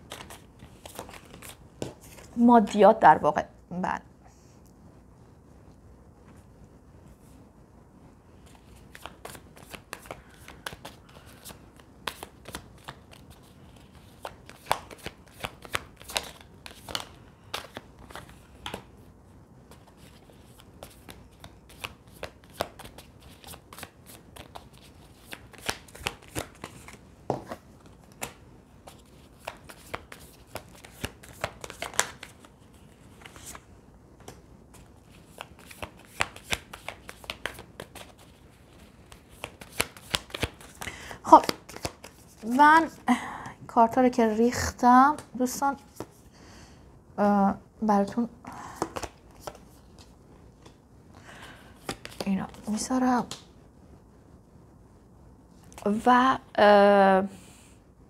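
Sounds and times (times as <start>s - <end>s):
cards snapping and tapping: 14.1s - 18.9s, 29.3s - 32.4s, 34.2s - 38.2s, 39.1s - 42.2s, 48.8s - 50.8s, 51.8s - 52.6s.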